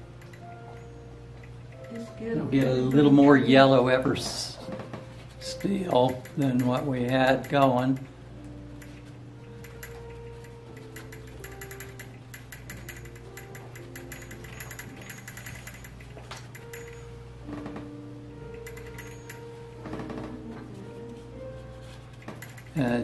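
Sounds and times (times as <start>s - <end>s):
soft background music: 0.0s - 23.0s.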